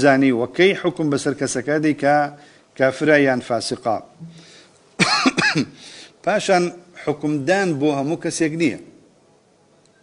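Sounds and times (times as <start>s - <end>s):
man clearing his throat: 5.0s - 5.8s.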